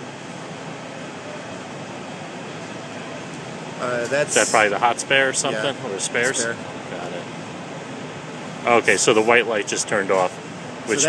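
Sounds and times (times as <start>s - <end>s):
server cooling fans whirring: 0.0s - 11.0s.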